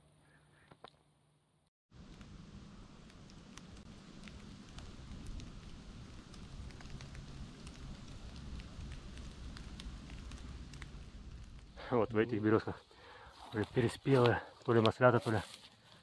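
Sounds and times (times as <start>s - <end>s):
crackling leaf litter: 2.0s - 16.0s.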